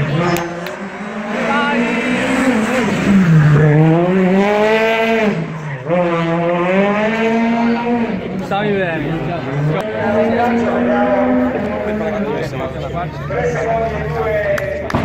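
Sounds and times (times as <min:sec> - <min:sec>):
rally car engine revving: 0:00.0 - 0:15.0.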